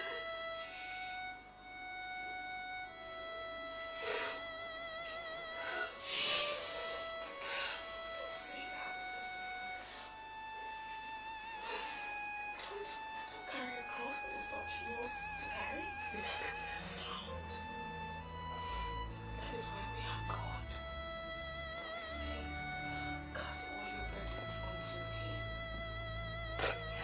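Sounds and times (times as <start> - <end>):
slow violin-like film music: 0.0 - 27.0.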